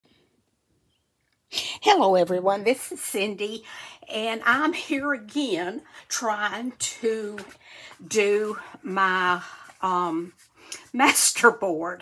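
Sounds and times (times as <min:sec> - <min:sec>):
woman speaking: 0:01.5 - 0:12.0.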